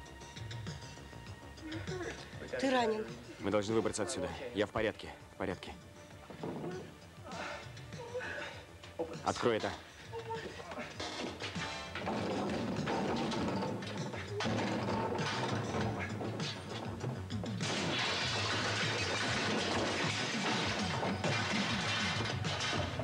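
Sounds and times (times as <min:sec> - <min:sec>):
background music: 0:00.0 - 0:23.0
metal furniture clattering: 0:10.8 - 0:17.0.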